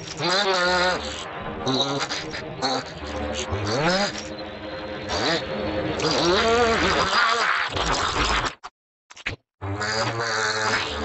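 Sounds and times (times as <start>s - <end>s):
cartoon creatures buzzing scream: 0.2s - 3.0s, 6.0s - 8.5s, 9.7s - 11.0s.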